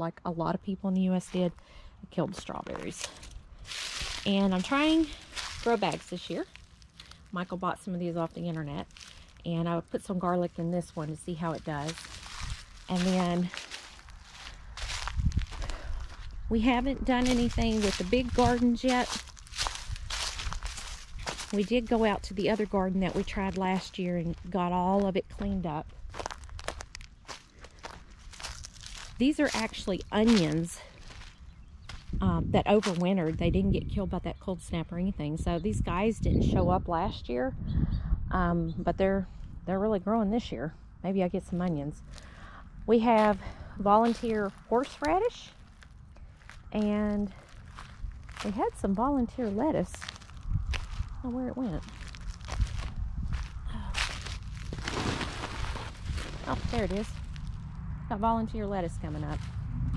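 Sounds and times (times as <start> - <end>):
footsteps crunching on dry ground: 2.3 - 33.6, 43.0 - 59.8
rustling: 10.8 - 16.4, 51.8 - 57.7.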